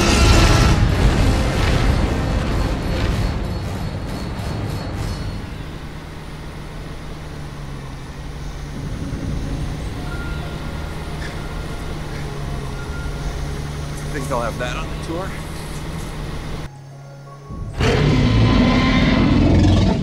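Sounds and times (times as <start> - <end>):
car engine running: 0.0 - 16.7.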